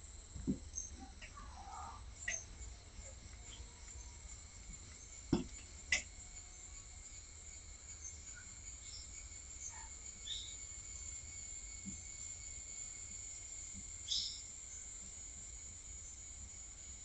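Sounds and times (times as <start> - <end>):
insects chorus: 0.0 - 17.0.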